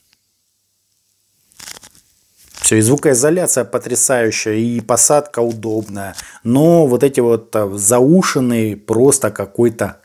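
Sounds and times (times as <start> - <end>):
rustling and crackling: 1.4 - 3.3, 4.6 - 6.4.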